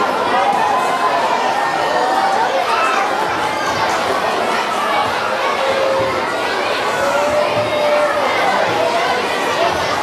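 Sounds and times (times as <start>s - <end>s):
children chattering in a hall: 0.0s - 10.0s.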